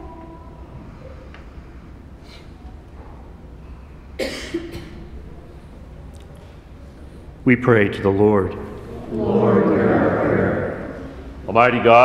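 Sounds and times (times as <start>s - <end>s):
low room hum: 0.0s - 12.0s
person coughing: 4.2s - 5.0s.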